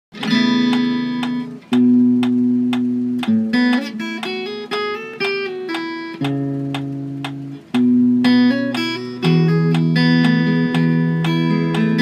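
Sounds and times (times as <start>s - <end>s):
fingerstyle acoustic guitar: 0.2s - 12.0s
light even clicking: 0.7s - 12.0s.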